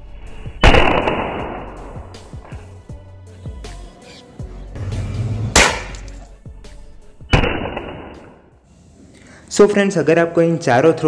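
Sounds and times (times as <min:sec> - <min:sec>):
sharp bangs: 0:00.6 - 0:01.8, 0:05.5 - 0:06.2, 0:07.3 - 0:08.4
metal nuts hitting concrete: 0:05.7 - 0:06.2.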